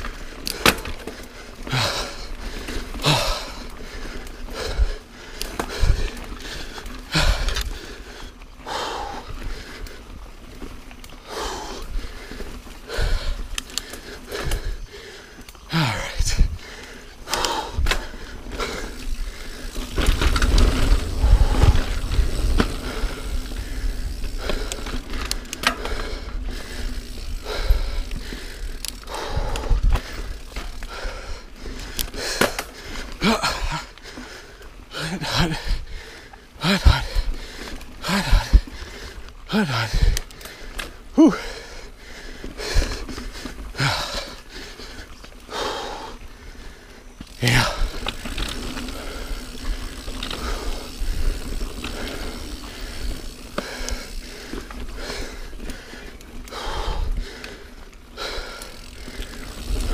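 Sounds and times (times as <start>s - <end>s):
bike tyres rolling on dirt: 0.0s - 59.9s.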